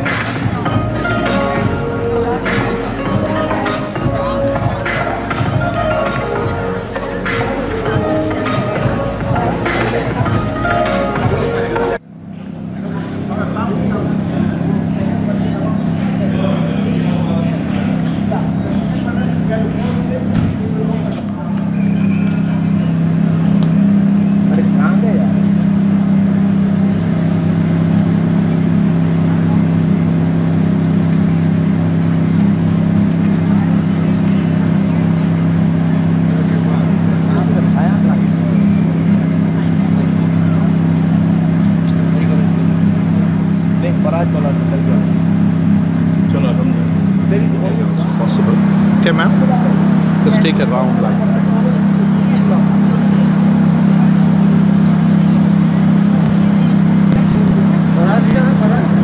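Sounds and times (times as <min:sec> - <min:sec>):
faint voices talking: 0:00.0 - 0:59.0
loud low hum: 0:00.0 - 0:59.0.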